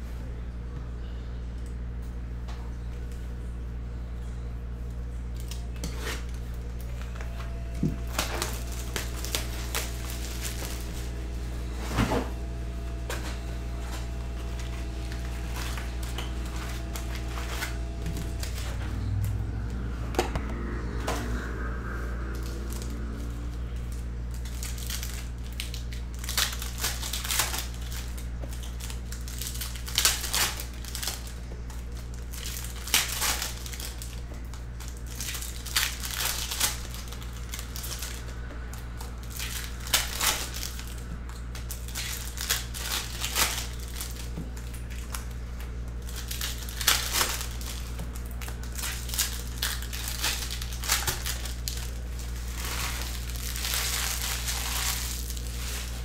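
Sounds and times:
steady low hum: 0:00.0 - 0:56.0
foil wrappers crinkling and tearing: 0:05.2 - 0:56.0.

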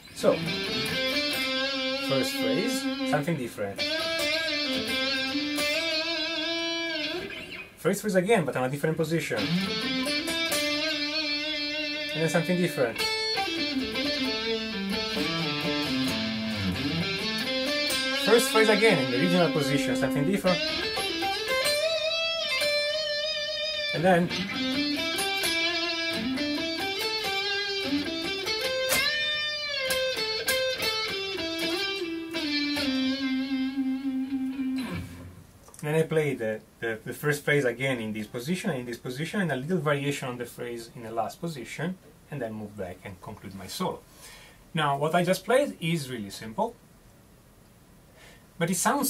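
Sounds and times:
electric guitar solo: 0:00.0 - 0:07.8, 0:09.4 - 0:35.4.

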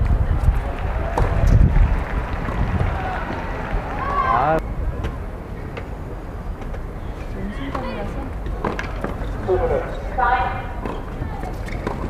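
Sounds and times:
wind buffeting microphone: 0:00.0 - 0:05.7
tennis balls struck by rackets: 0:07.6 - 0:09.3, 0:10.7 - 0:12.0.

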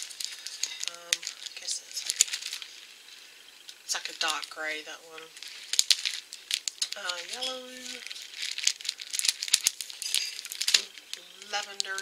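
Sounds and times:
plastic packets crinkling and clicking: 0:00.0 - 0:12.0.

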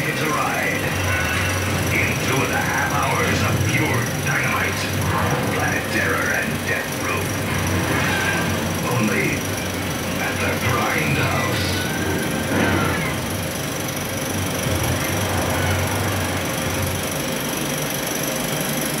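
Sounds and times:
muffled voices: 0:00.0 - 0:13.3
film projector running: 0:00.0 - 0:19.0.

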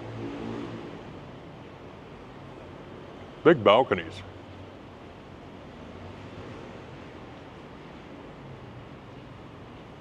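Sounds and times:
vehicle engine passing: 0:00.0 - 0:01.2.

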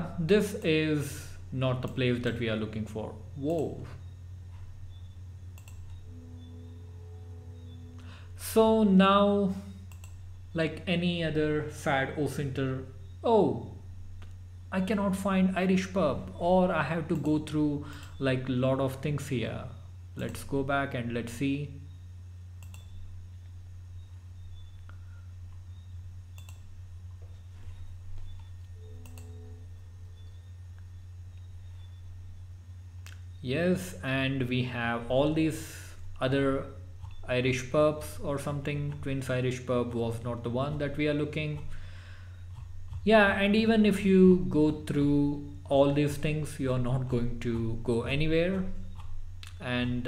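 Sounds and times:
faint steady tones: 0:00.0 - 0:50.0
low electrical hum: 0:00.0 - 0:50.0
computer mouse click: 0:05.0 - 0:06.0, 0:09.8 - 0:10.2, 0:17.1 - 0:18.2, 0:22.6 - 0:23.0, 0:26.3 - 0:26.7, 0:27.8 - 0:29.4.

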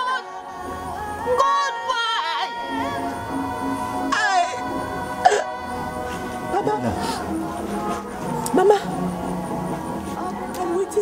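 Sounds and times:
background music: 0:00.0 - 0:11.0
woman sobbing: 0:04.1 - 0:07.4, 0:08.5 - 0:09.1.

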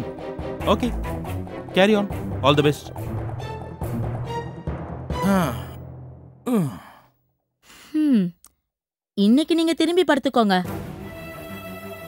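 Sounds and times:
person sighing: 0:05.2 - 0:05.8, 0:06.5 - 0:08.4.

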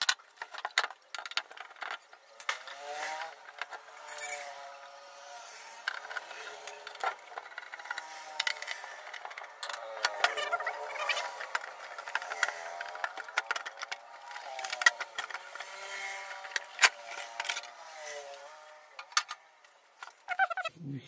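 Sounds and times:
case clicks knocks and rattles: 0:05.9 - 0:17.7.

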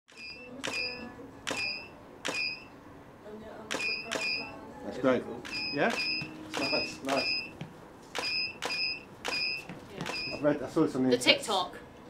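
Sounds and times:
camera shutter click: 0:00.6 - 0:00.9, 0:01.5 - 0:02.6, 0:03.7 - 0:04.5, 0:05.4 - 0:07.2, 0:08.2 - 0:10.4
short high beep: 0:05.5 - 0:07.6, 0:08.2 - 0:10.4.

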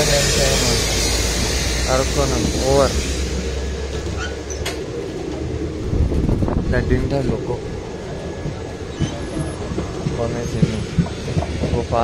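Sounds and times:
high hiss: 0:00.0 - 0:04.9
train rumble: 0:00.0 - 0:12.0.

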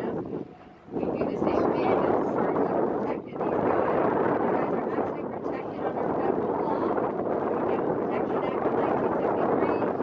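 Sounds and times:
indistinct chatter of passengers: 0:00.0 - 0:10.0
wind blowing over microphone: 0:00.0 - 0:10.0.

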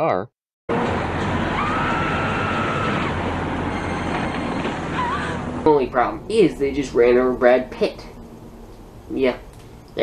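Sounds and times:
car rumbling on road: 0:00.7 - 0:07.4.

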